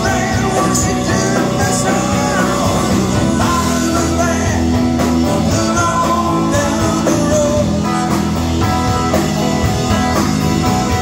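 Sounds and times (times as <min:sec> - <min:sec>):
person singing: 0:00.0 - 0:08.4
live rock band playing: 0:00.0 - 0:11.0.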